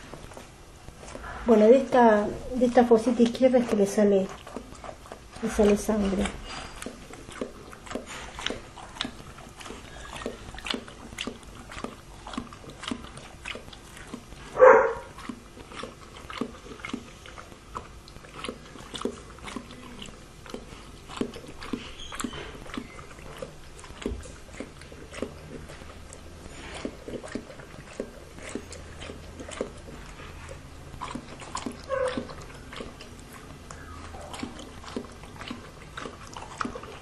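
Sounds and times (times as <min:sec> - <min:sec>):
dog lapping water from bowl: 0:01.2 - 0:37.0.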